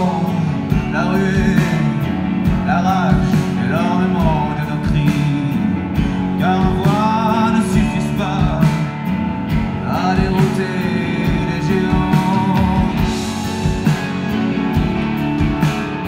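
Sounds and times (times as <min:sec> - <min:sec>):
bending sliding guitar line: 0:00.0 - 0:16.0
live rock band playing: 0:00.0 - 0:16.0.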